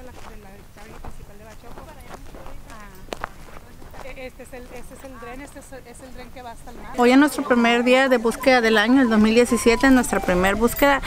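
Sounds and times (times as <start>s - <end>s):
footsteps on dry ground: 0.0s - 10.6s
voices talking: 0.0s - 11.0s.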